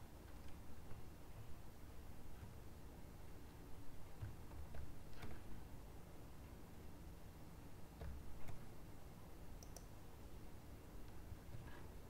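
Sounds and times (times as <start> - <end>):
faint low hum: 0.0 - 12.0
computer mouse button clicks: 9.6 - 9.9.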